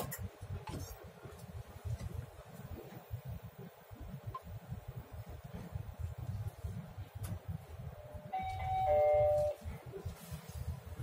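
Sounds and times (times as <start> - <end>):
elevator car rumble: 0.0 - 11.0
elevator two-note chime: 8.2 - 9.6.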